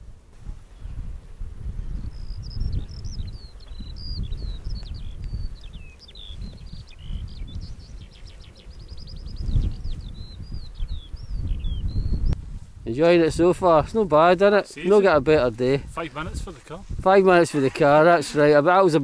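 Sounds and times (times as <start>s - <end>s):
wind rumble on microphone: 0.0s - 18.2s
songbird singing: 0.0s - 19.0s.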